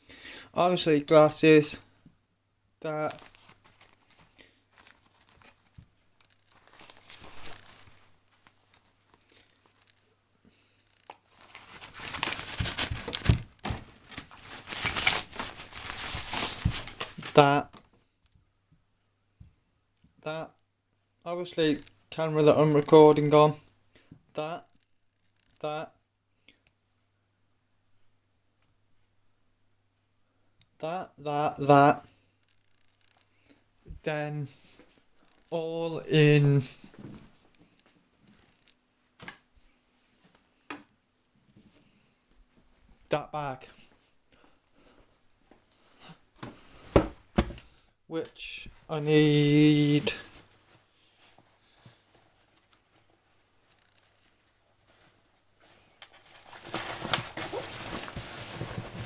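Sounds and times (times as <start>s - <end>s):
rustling and crinkling: 3.0s - 18.1s, 32.1s - 35.6s, 36.6s - 40.6s, 48.6s - 59.0s.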